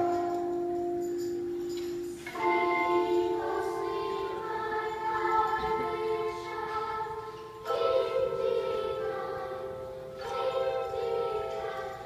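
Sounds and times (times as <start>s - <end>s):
children singing held notes: 0.0s - 12.0s.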